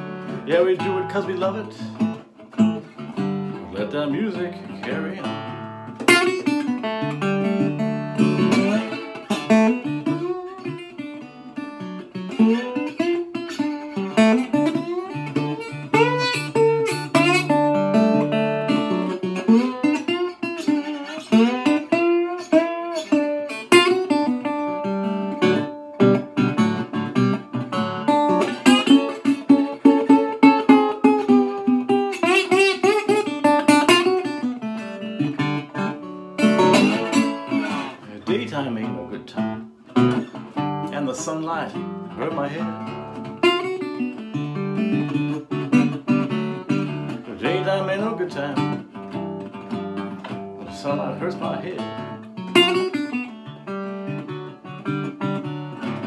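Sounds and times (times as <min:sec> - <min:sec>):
resonator guitar blues: 0:00.0 - 0:56.0.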